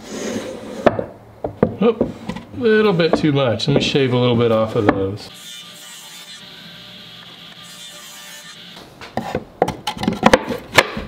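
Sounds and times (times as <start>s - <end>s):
sharp wooden knocks: 9.2s - 11.0s.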